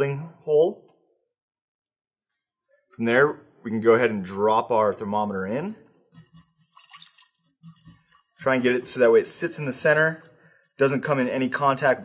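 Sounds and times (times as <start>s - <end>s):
metal stem clinking among ice: 6.0s - 11.4s.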